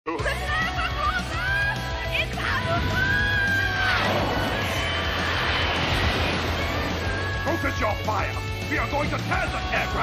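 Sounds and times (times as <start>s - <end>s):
rushing roar of aircraft engine: 2.7s - 7.6s.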